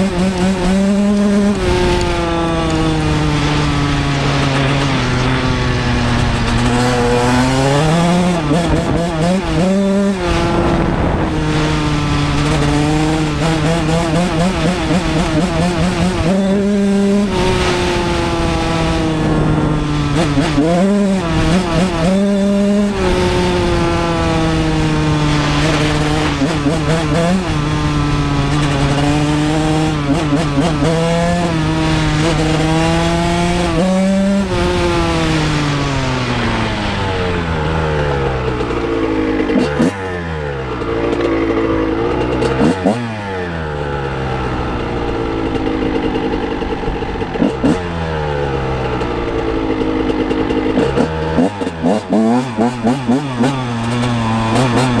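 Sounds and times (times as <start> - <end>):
two-stroke motorcycle engine revving: 0.0 - 55.0.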